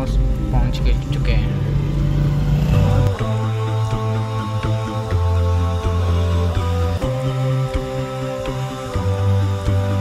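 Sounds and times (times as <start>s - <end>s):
car engine and road noise: 0.0s - 5.4s
vocal-only chant with held notes: 2.7s - 10.0s.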